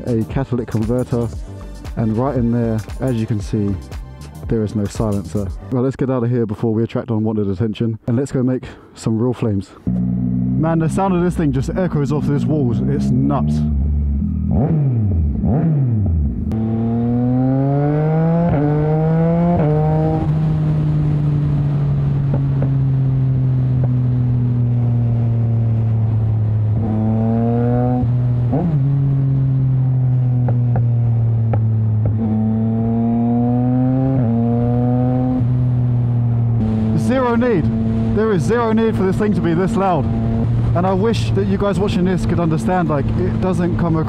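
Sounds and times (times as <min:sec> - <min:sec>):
loud motorcycle engine revving: 0:09.9 - 0:11.3, 0:12.0 - 0:41.1.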